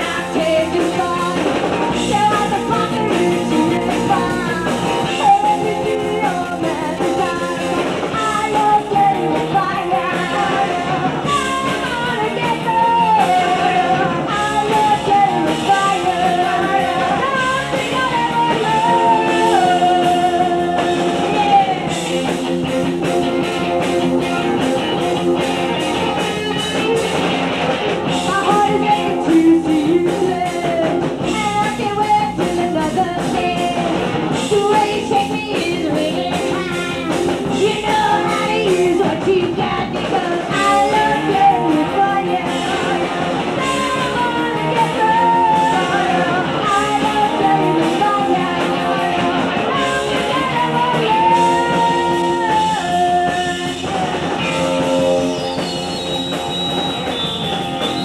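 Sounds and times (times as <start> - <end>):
woman singing: 0.0 - 22.1, 25.7 - 27.3, 28.1 - 55.1
drum kit: 0.0 - 58.0
electric guitar: 0.0 - 58.0.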